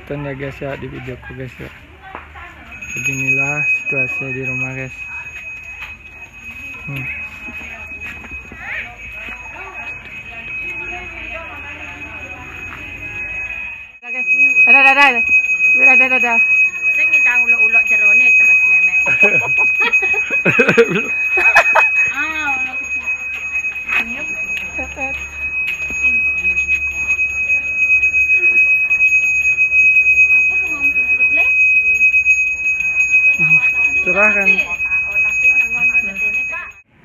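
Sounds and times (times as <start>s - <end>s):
voices: 0.0s - 36.9s
hand bell ringing: 2.6s - 36.9s.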